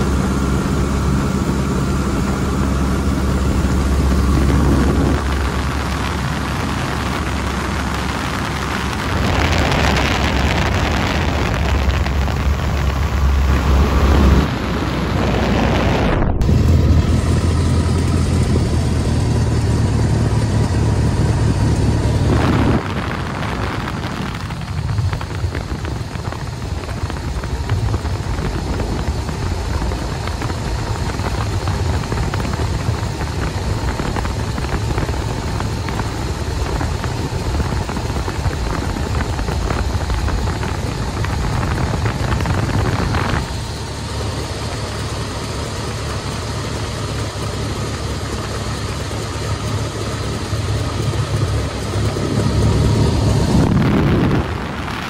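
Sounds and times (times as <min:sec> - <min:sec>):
wind rushing over microphone: 0:00.0 - 0:46.4, 0:48.2 - 0:55.0
biplane engine running: 0:00.0 - 0:55.0.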